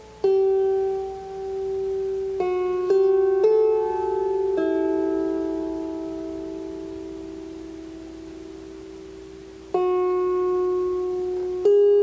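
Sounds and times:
plucked lyre notes ringing: 0:00.0 - 0:12.0.

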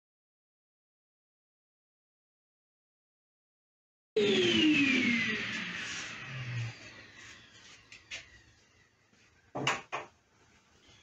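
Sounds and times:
planer whine winding down: 0:04.2 - 0:09.0.

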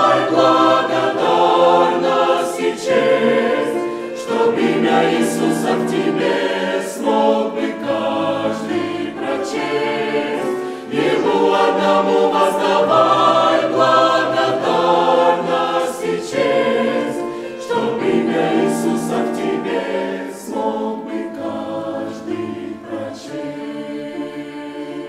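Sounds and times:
choir singing a hymn: 0:00.0 - 0:25.0.

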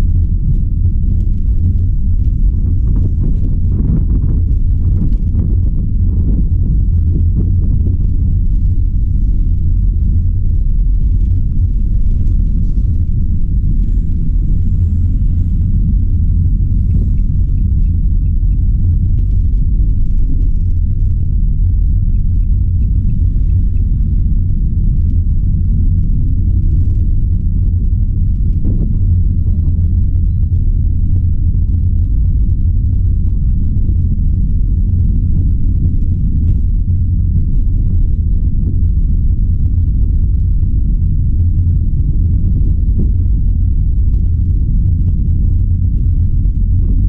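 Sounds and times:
van engine and road noise: 0:00.0 - 0:47.0.

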